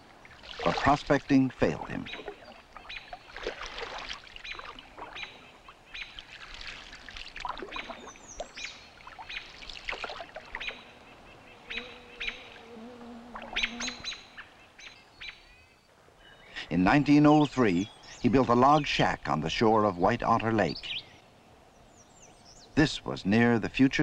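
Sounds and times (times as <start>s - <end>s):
canoe paddle water swishes: 0.0s - 11.4s
birds chirping: 0.0s - 19.1s, 19.7s - 23.1s
low drawn-out bird call: 1.8s - 3.5s, 10.4s - 12.8s, 13.4s - 16.6s.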